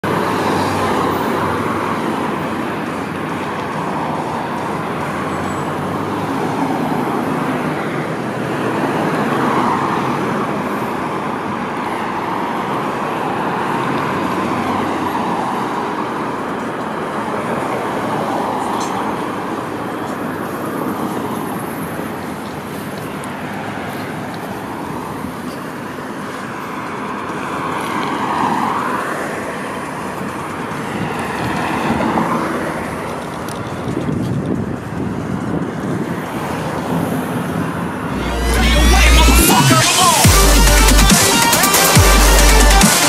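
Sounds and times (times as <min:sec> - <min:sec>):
cars driving past: 0:00.0 - 0:43.0.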